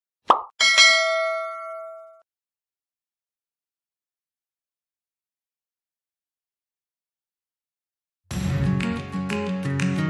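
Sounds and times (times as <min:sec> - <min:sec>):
bright bell ding: 0:00.6 - 0:02.2.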